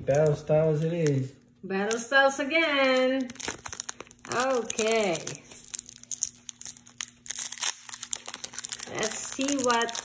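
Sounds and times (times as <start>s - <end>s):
foil wrapper crinkling and tearing: 0.0s - 10.0s.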